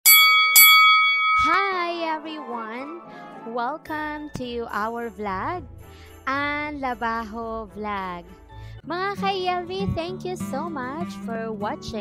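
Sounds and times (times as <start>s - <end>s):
bright bell dings: 0.0s - 2.2s.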